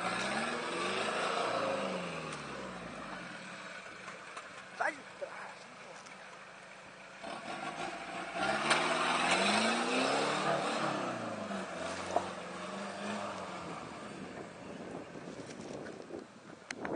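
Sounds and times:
tyres on loose ground: 0.0s - 16.9s
suv engine driving past: 7.1s - 14.5s.

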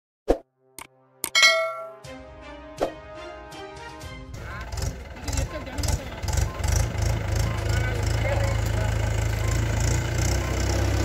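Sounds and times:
bright bell ding: 1.3s - 2.0s.

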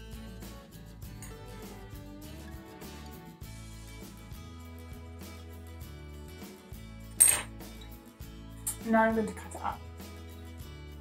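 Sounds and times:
soft background music: 0.0s - 11.0s
tool clinking on wooden table: 7.2s - 7.5s.

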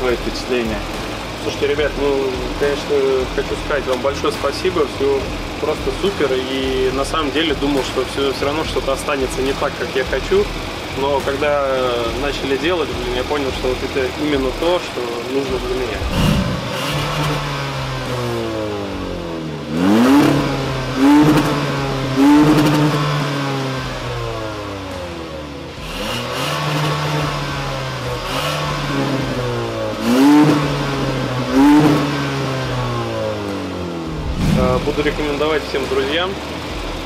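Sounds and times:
car engine idling and revving: 0.0s - 37.0s.

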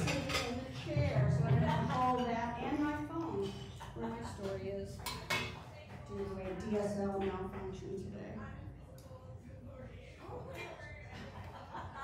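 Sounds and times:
dishes clinking: 0.0s - 6.6s
faint voices: 0.0s - 12.0s.

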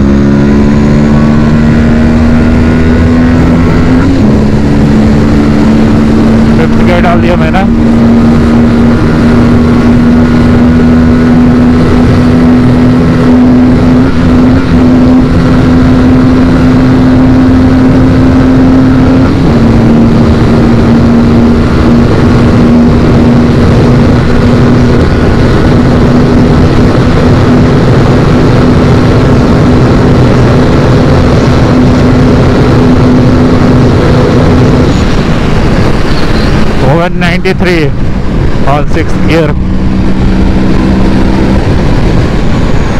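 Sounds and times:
motorcycle engine high-revving drone: 0.0s - 42.9s
wind rush on microphone: 0.0s - 42.9s.

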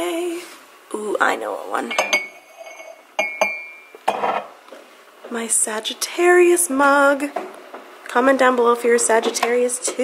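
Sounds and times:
ceramic mugs clinking: 1.9s - 4.6s.

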